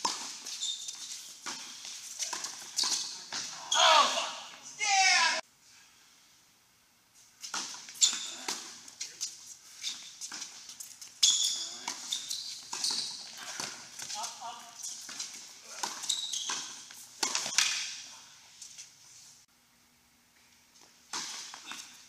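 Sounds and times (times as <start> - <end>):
sneakers squeaking on court: 0.0 - 4.2, 7.4 - 8.8, 9.7 - 17.9
tennis balls bouncing on hard court: 11.2 - 17.9
tennis balls struck by rackets: 11.7 - 18.0.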